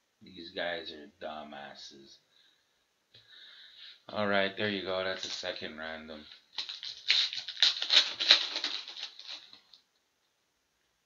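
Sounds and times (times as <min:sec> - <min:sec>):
foil wrapper crinkling and tearing: 0:06.3 - 0:09.8.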